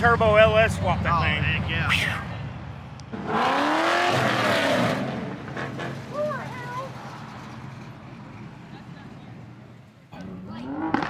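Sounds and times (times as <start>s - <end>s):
muscle car accelerating: 0.0s - 11.0s.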